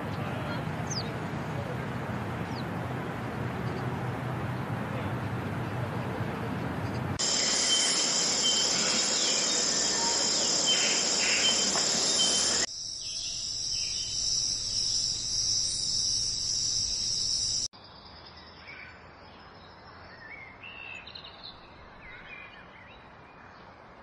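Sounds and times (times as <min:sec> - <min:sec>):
insects chirping: 0:07.2 - 0:17.7.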